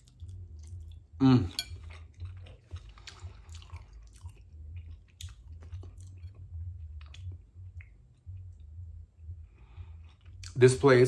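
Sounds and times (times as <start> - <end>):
person chewing soft food: 0.0 - 10.6.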